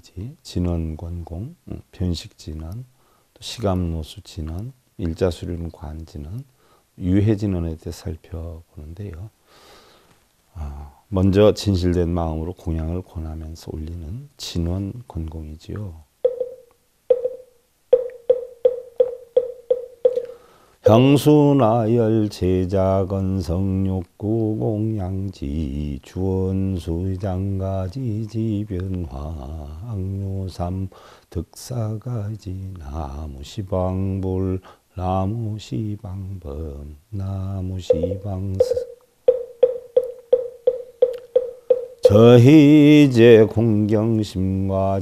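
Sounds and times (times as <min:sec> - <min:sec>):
wooden fish knocking: 0:18.0 - 0:20.2, 0:37.9 - 0:42.0.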